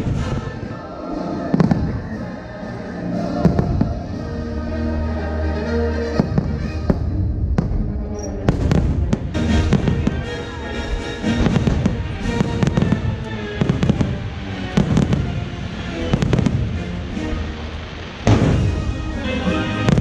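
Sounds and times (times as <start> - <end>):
fireworks bangs: 0.0 - 0.8, 1.5 - 2.5, 3.4 - 4.2, 6.2 - 20.0
music soundtrack: 0.0 - 20.0.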